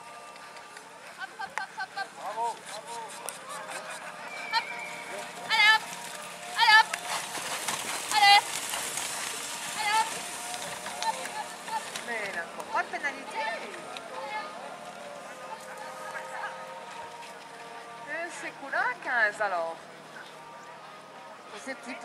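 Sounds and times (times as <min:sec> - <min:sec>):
high wavering calls of voice: 0:03.5 - 0:05.8.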